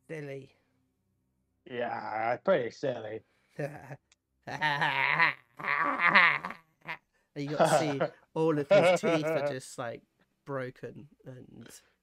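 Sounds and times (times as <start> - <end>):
man making wavering wordless sounds: 4.5 - 8.1.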